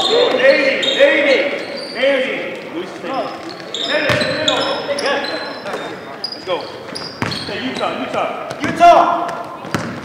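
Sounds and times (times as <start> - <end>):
basketball bouncing on hardwood floor: 7.2 - 7.5, 8.5 - 10.0.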